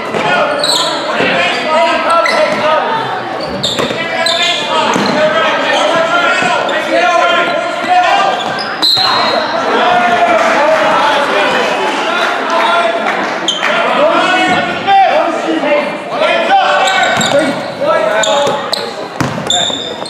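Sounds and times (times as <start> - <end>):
voices calling out: 0.0 - 20.0
shoe squeaks: 0.4 - 2.6, 3.3 - 7.7, 8.3 - 9.4, 16.8 - 20.0
basketball bouncing on hardwood: 19.2 - 19.5.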